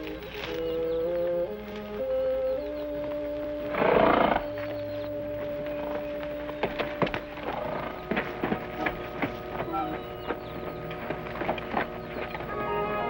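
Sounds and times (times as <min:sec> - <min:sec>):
hoofbeats: 0:00.0 - 0:13.0
music of long held chords: 0:00.0 - 0:13.0
horse calling loudly: 0:03.7 - 0:04.4.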